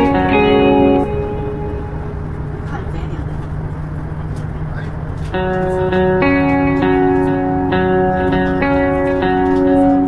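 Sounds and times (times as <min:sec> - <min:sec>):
guitar notes: 0:00.0 - 0:03.9, 0:05.3 - 0:10.0
low rumble: 0:00.0 - 0:08.3
constant low hum: 0:00.0 - 0:10.0.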